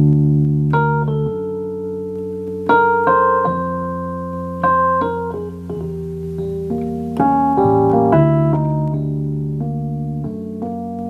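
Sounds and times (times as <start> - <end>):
piano playing slowly: 0.0 - 11.0.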